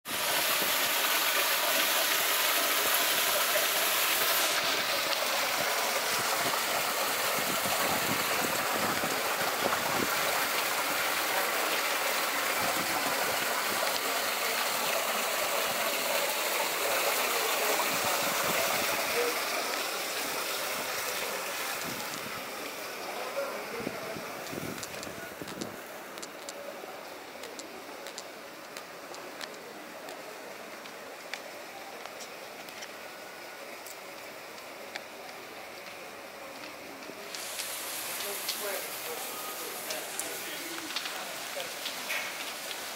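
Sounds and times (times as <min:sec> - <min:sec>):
water running over rocks: 0:00.1 - 0:42.9.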